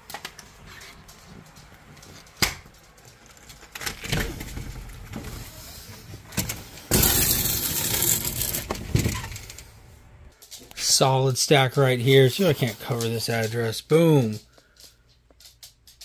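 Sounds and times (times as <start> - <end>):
handling knocks and rustle: 0.0 - 10.8.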